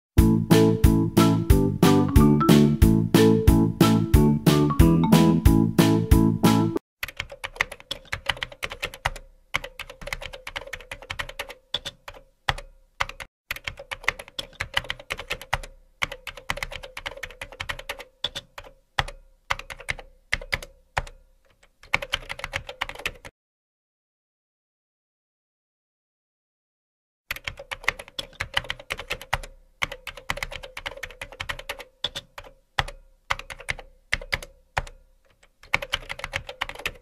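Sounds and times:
music: 0.2s - 6.8s
keyboard typing: 7.0s - 23.3s, 27.3s - 37.0s.

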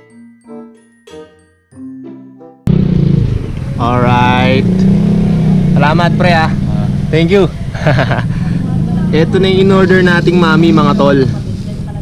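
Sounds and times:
chiming background music: 0.0s - 2.6s
motorcycle engine drone: 2.7s - 12.0s.

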